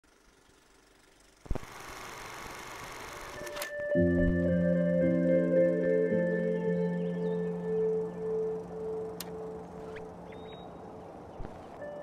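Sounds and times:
ambient music chords: 3.4 - 12.0
click: 9.2 - 9.4.

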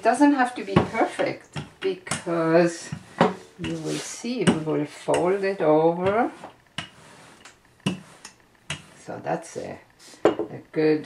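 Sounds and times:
rolling pin rolling dough: 0.0 - 11.0.

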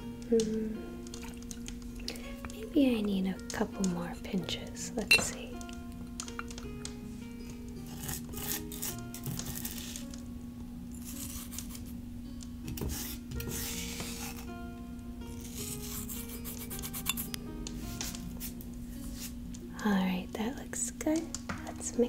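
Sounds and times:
soft tavern music: 0.0 - 20.3.

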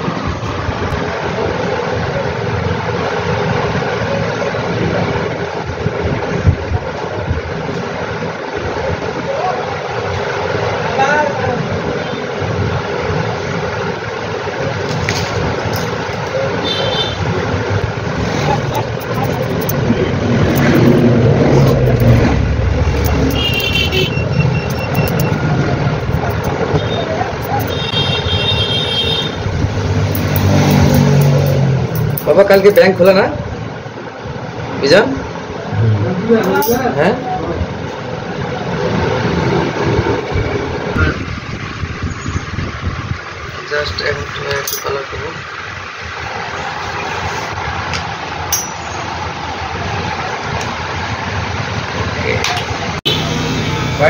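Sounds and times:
road traffic noise: 0.0 - 54.0
vehicle rumbling past: 17.2 - 28.3, 29.3 - 32.9, 33.5 - 36.5.

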